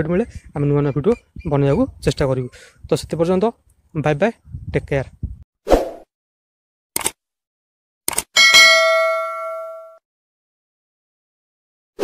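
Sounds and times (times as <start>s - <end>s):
quick clicks: 7.0s - 7.2s, 8.1s - 8.3s
bell ding: 8.4s - 10.0s.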